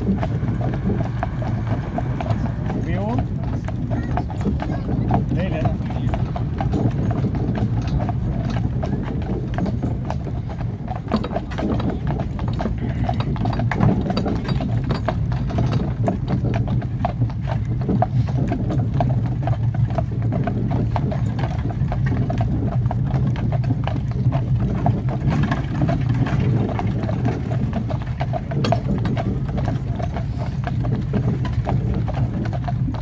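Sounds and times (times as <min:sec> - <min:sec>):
cart rumbling: 0:00.0 - 0:33.0
hooves clip-clopping on pavement: 0:00.0 - 0:33.0.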